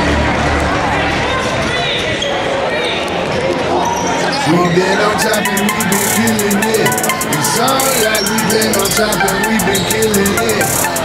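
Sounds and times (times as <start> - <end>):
players and spectators talking: 0.0 - 11.0.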